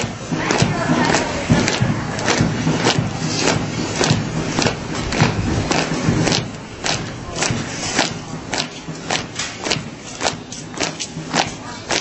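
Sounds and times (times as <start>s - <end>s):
marching footsteps on asphalt: 0.0s - 12.0s
street din: 0.0s - 12.0s.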